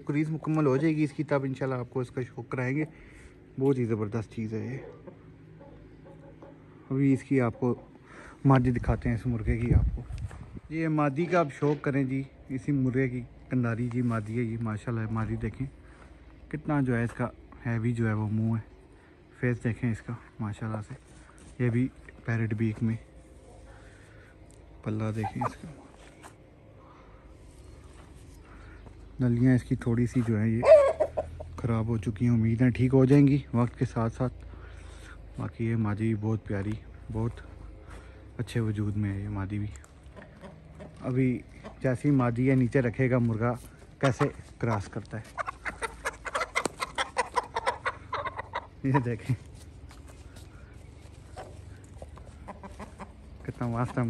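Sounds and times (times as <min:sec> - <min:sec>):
chicken clucking quietly: 0:04.6 - 0:08.7, 0:24.6 - 0:26.3, 0:30.0 - 0:31.9, 0:39.8 - 0:42.7, 0:43.3 - 0:54.0.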